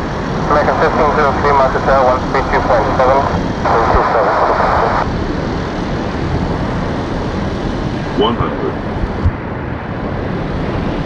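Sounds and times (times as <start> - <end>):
distant jet engines rumbling: 0.0 - 11.0
wind on microphone: 0.0 - 11.0.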